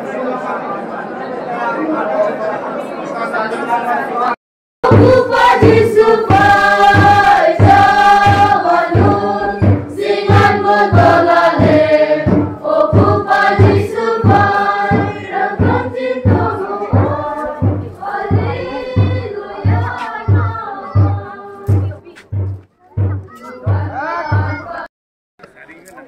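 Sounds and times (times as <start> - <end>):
women singing a hymn: 4.8 - 22.0
steady low beat: 4.8 - 24.9.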